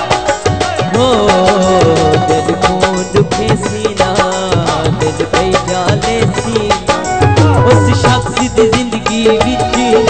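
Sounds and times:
instrumental accompaniment: 0:00.0 - 0:10.0
man singing folk song: 0:00.0 - 0:10.0
steady percussion beat: 0:00.0 - 0:10.0.

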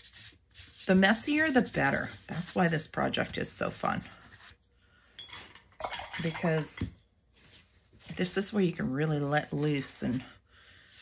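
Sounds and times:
paintbrush scrubbing cardstock: 0:00.0 - 0:04.7.

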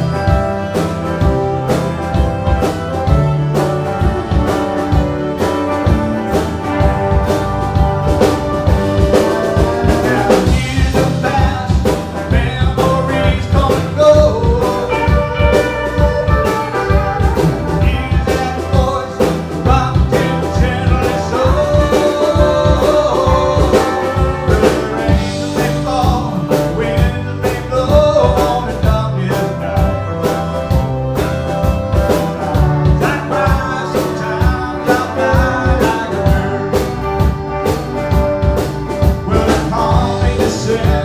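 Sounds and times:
blues-rock band playing: 0:00.0 - 0:41.0.

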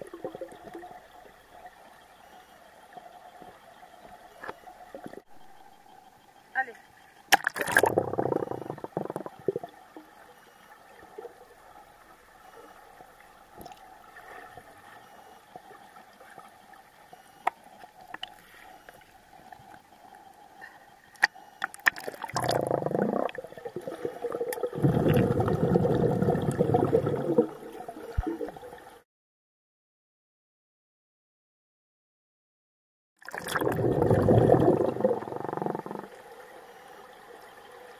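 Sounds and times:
underwater gurgling: 0:00.0 - 0:02.2, 0:07.3 - 0:29.0, 0:33.2 - 0:37.9
muffled pool water splashing: 0:06.6 - 0:29.0, 0:33.2 - 0:37.9.

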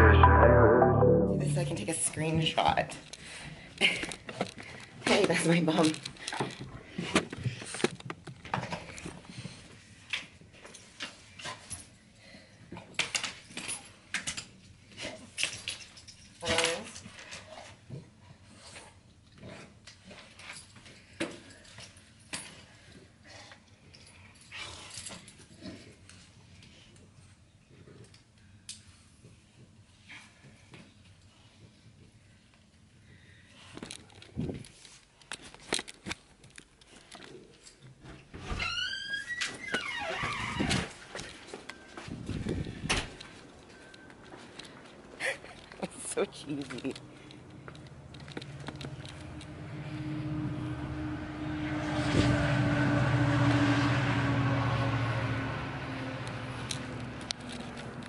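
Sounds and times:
handling clicks and rustling: 0:03.8 - 0:11.8, 0:33.7 - 0:38.0, 0:40.9 - 0:49.5, 0:56.6 - 0:58.0
metal clips and buckles clinking: 0:03.9 - 0:06.6, 0:33.8 - 0:37.9, 0:46.5 - 0:49.5, 0:56.6 - 0:58.0.

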